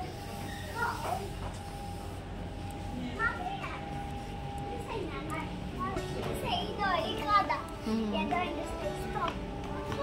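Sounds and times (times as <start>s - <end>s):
children chattering and calling out: 0.0s - 1.7s, 2.8s - 10.0s
background music: 6.5s - 10.0s.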